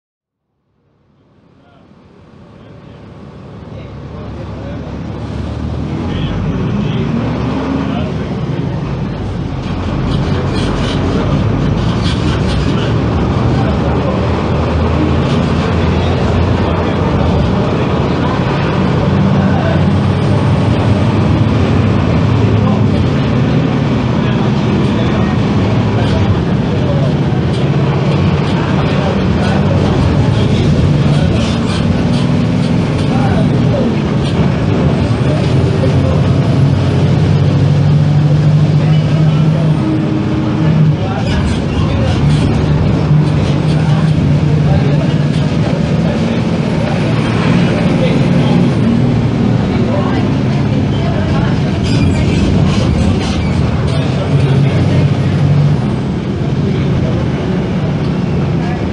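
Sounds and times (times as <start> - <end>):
bus diesel engine: 0.4 - 58.9.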